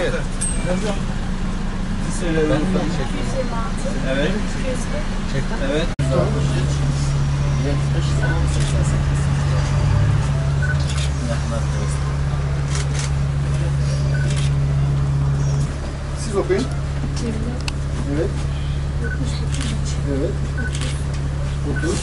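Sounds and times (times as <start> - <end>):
bus engine idling: 0.0 - 22.0.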